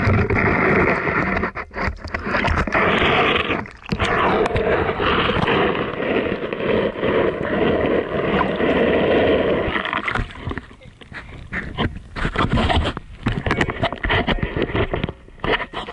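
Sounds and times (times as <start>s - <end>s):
water sloshing and splashing: 0.0s - 6.4s, 8.0s - 15.9s
muffled underwater sound: 0.0s - 15.9s.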